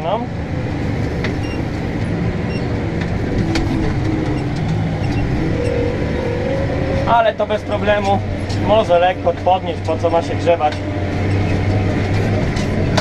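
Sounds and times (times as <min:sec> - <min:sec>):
tractor diesel engine running: 0:00.0 - 0:13.0.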